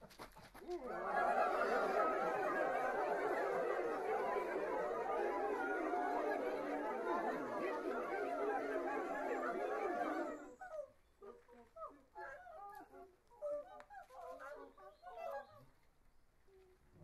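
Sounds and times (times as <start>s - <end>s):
choir making animal-like vocal sounds: 0.8s - 15.6s.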